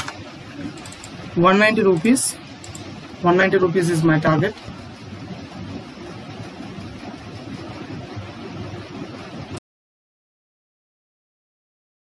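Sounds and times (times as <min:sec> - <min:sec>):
low rumble: 0:00.2 - 0:09.6.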